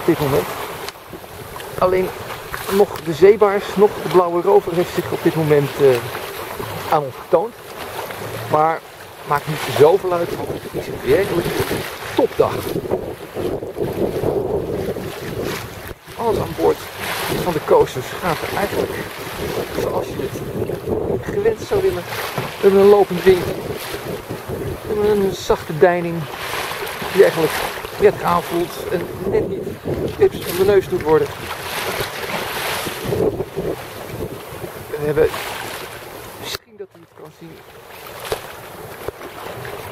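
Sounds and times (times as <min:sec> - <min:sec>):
wind buffeting microphone: 0:00.0 - 0:36.5
choppy sea water rushing along hull: 0:00.0 - 0:39.9.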